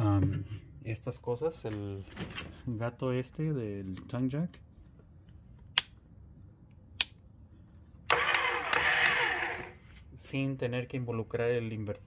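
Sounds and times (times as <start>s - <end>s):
sharp clicks: 5.7s - 6.0s, 6.9s - 7.2s, 8.0s - 9.7s
electric motor running: 8.1s - 9.8s.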